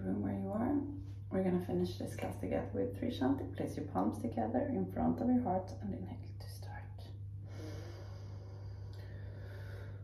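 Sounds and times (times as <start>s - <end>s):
steady low hum: 0.0s - 10.0s
woman breathing in deeply: 7.4s - 10.0s.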